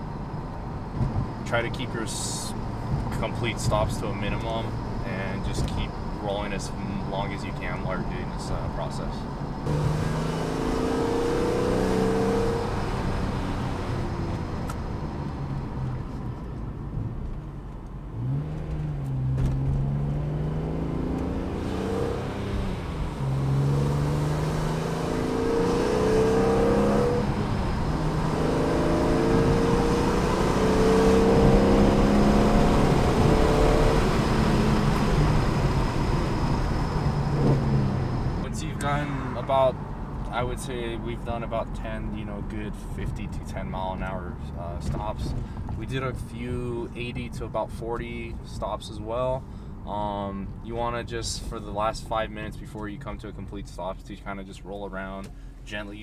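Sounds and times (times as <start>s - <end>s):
car engine revving: 0.7s - 47.4s.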